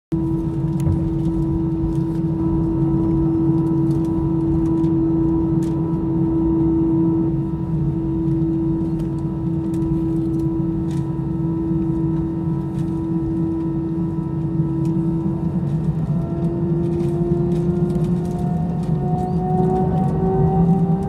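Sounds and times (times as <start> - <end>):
jet engine cabin hum: 0.1 - 21.0.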